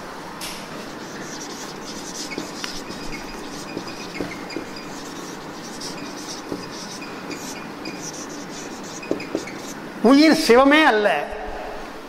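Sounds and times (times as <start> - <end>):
room hum: 0.0 - 12.0
scratchy writing sounds: 0.8 - 9.8.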